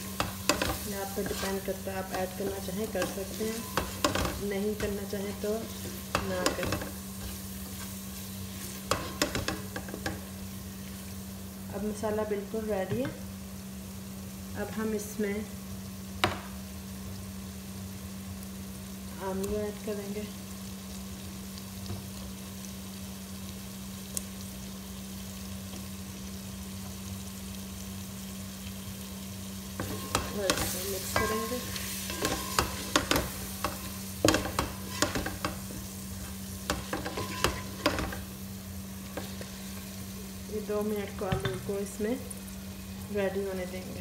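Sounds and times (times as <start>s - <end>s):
onions frying in a pot: 0.0s - 44.0s
spoon scraping a metal pot: 29.8s - 35.5s, 36.7s - 38.2s.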